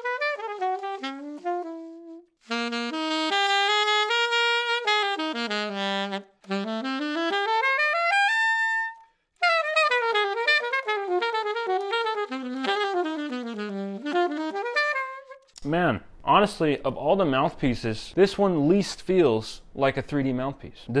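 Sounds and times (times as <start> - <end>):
alto saxophone jazz phrases: 0.0 - 15.5.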